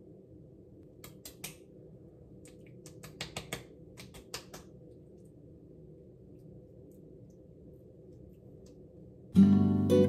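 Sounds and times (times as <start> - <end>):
low room hum: 0.0 - 10.0
fingers patting face: 1.0 - 1.6, 2.5 - 4.8.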